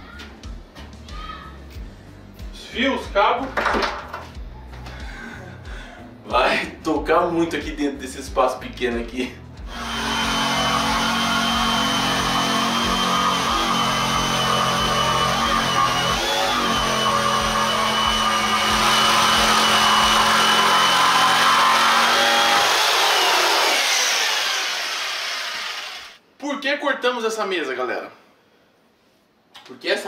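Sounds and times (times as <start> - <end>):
electric jigsaw cutting wood: 9.7 - 26.2.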